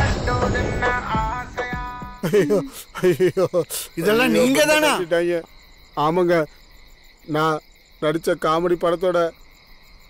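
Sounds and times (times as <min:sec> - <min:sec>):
night insects chirping: 0:00.0 - 0:10.0
man speaking: 0:02.2 - 0:06.5.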